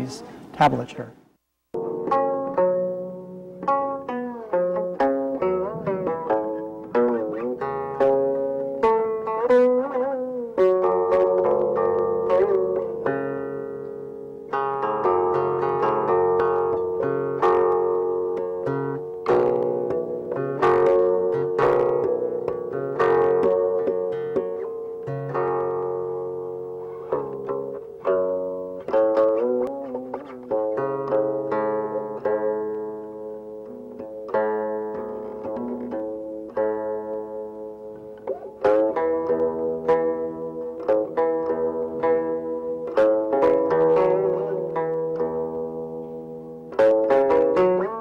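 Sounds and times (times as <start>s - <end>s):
zither playing slow melody: 1.8s - 48.0s.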